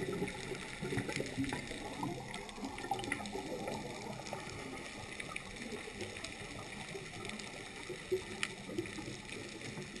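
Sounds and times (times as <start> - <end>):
muffled underwater water noise: 0.0 - 10.0.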